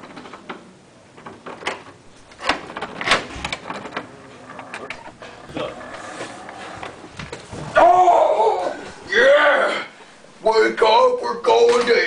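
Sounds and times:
door latch clicks and knocks: 1.2 - 4.1.

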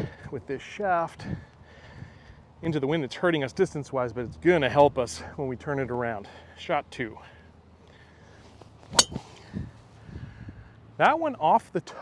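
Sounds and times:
golf driver striking ball: 8.9 - 9.3.

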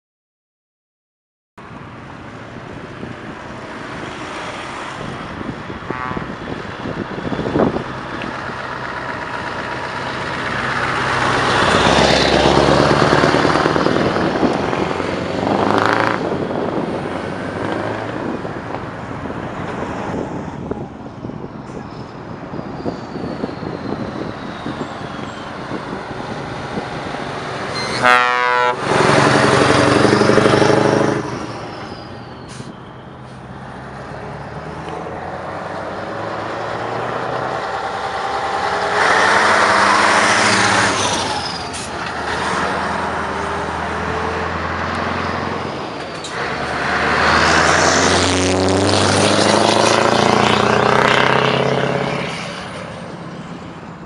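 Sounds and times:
heavy trucks accelerating: 1.6 - 54.0
air horn blast: 5.9 - 6.4, 27.7 - 29.2.

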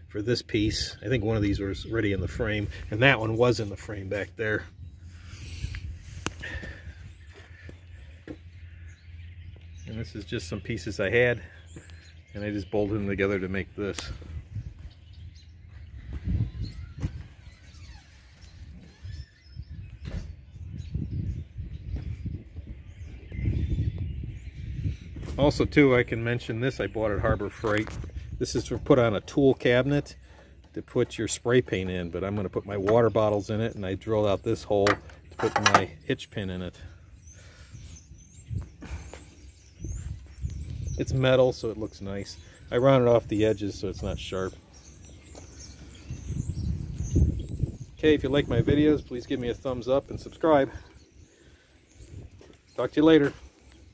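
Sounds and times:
wind and handling rumble on microphone: 0.3 - 53.9
faint bird chirps: 4.5 - 25.5.

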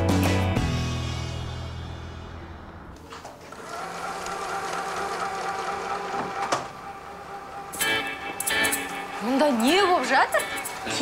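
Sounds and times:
sewing machine motor whine: 3.4 - 11.0.

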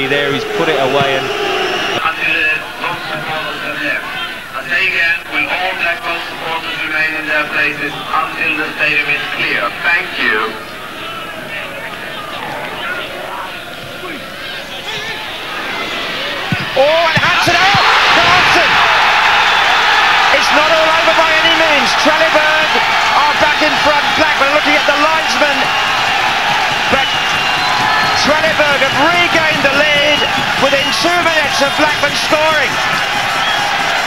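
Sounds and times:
stadium crowd cheering and shouting: 0.0 - 34.0.

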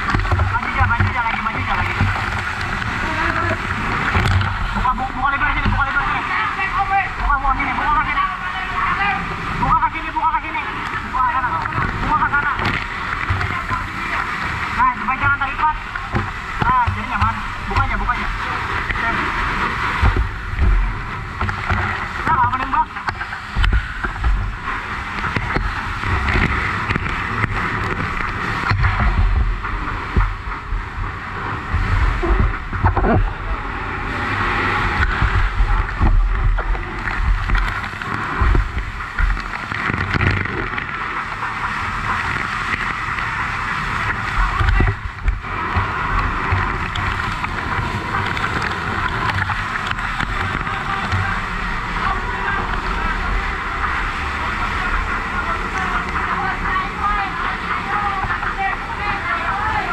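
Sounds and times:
fire hose water spraying: 0.0 - 59.9
low rumbling knocks: 15.2 - 43.3, 44.0 - 54.0.

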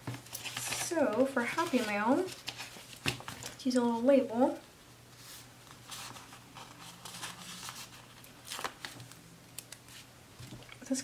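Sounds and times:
paper sticker sheets rustling: 0.0 - 3.6, 5.2 - 10.6.

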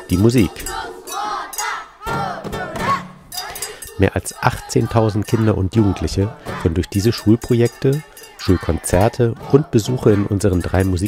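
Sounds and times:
children shouting together: 0.4 - 3.9, 8.2 - 10.4.

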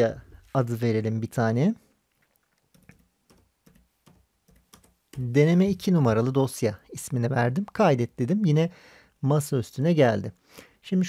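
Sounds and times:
computer keyboard keystrokes: 2.7 - 5.3.

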